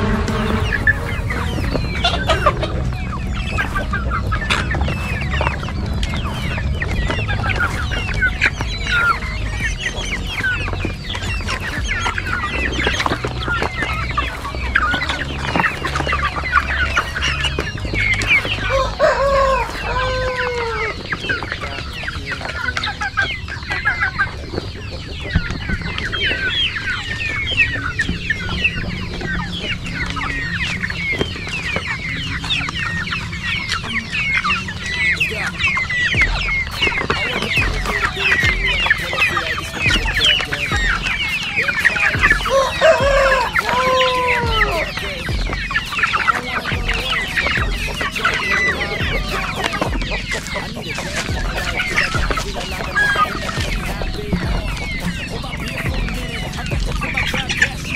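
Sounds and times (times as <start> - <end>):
beaks pecking plastic tray: 0.0 - 57.9
chicks chirping and clucking: 0.0 - 57.9
drawn-out chicken call: 0.0 - 57.9.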